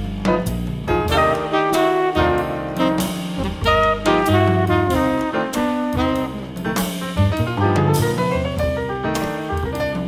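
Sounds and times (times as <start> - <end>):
drum kit and cymbals: 0.0 - 10.0
low bass notes: 0.0 - 10.0
piano chords: 0.0 - 10.0.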